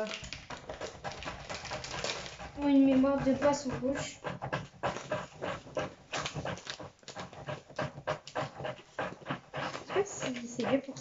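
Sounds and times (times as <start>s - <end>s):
rhythmic panting: 0.0s - 11.0s.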